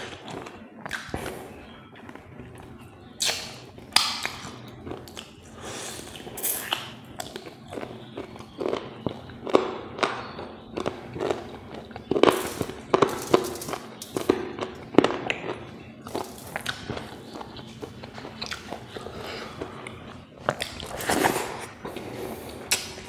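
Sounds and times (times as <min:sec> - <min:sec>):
lip smacks: 0:00.4 - 0:01.3, 0:03.2 - 0:05.4, 0:06.0 - 0:10.2, 0:15.3 - 0:21.8, 0:22.5 - 0:23.0
wet chewing: 0:02.0 - 0:23.0
sharp mouth clicks: 0:18.4 - 0:18.9.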